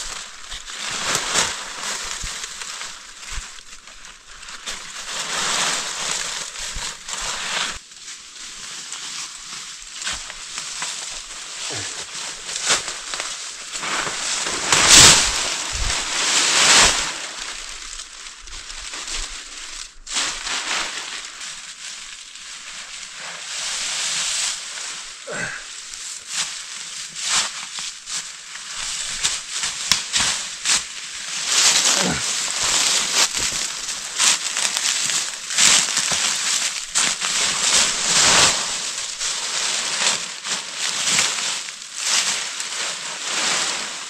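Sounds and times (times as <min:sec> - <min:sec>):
leafy branches rustling and crackling: 0:00.0 - 0:44.0.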